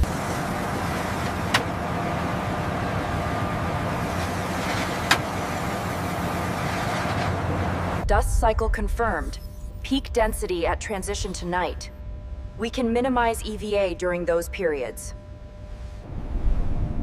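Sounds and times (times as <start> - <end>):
heavy machinery rumble and hum: 0.0 - 17.0.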